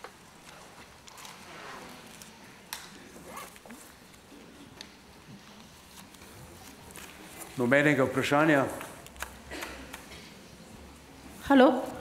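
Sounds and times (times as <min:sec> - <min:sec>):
paper sheets rustling: 0:05.5 - 0:07.8.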